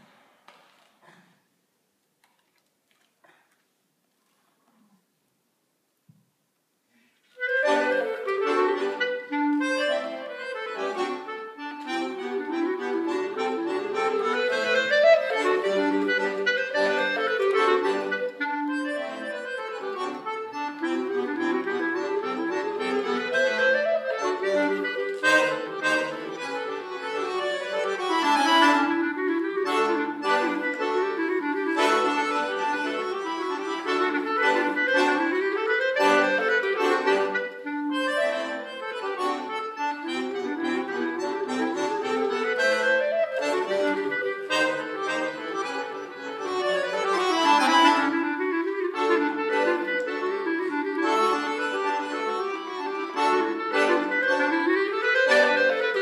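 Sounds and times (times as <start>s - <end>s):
clarinet and accordion duet: 7.2s - 56.0s.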